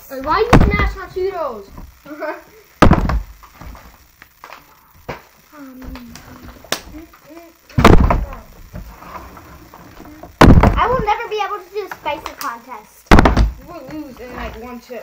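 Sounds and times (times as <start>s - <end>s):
sharp knock: 2.8s - 3.3s, 7.8s - 8.3s, 10.4s - 11.0s, 13.1s - 13.6s
plastic bottle thudding on table: 2.8s - 3.8s, 10.4s - 10.9s, 13.1s - 13.6s
quiet children's voices: 4.6s - 8.7s, 9.7s - 15.0s.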